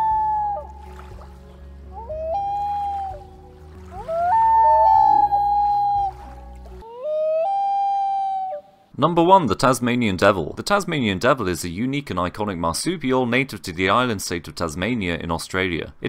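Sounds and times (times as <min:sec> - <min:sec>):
loon wail calls: 0:00.0 - 0:00.9, 0:01.9 - 0:08.9.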